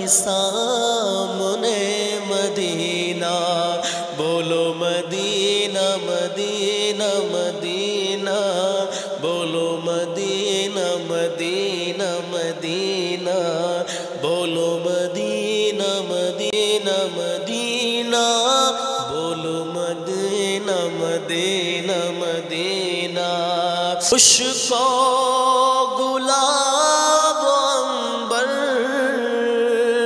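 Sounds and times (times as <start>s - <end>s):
man singing devotional song: 0.0s - 30.0s.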